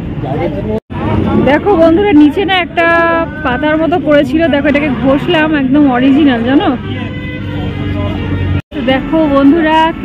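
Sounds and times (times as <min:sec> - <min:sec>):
woman's voice: 0:01.4 - 0:06.8, 0:08.7 - 0:10.0.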